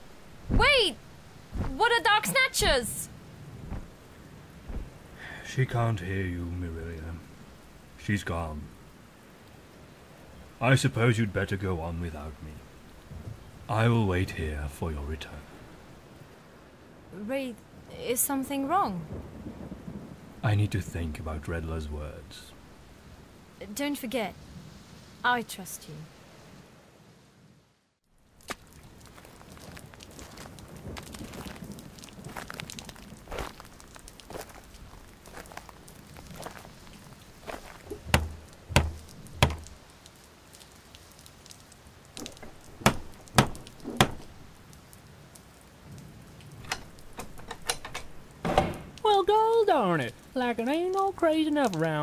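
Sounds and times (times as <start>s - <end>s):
soft background hiss: 0.0s - 27.6s
man talking: 5.2s - 7.3s, 8.0s - 8.7s, 10.6s - 12.6s, 13.7s - 15.5s, 20.4s - 22.6s
heavy knocks on a door: 38.0s - 39.7s, 42.4s - 44.3s.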